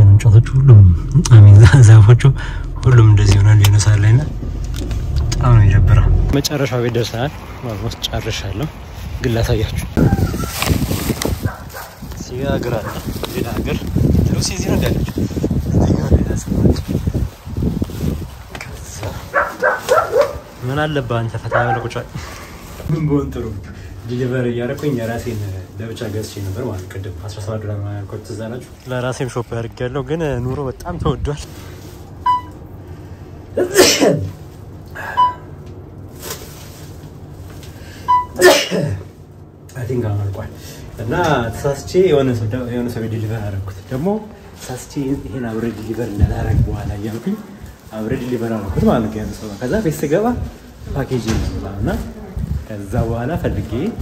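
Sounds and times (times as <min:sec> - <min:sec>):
dog yelping: 0:19.3 - 0:20.5, 0:21.5 - 0:21.9
man sneezing: 0:33.6 - 0:34.4, 0:38.4 - 0:39.1.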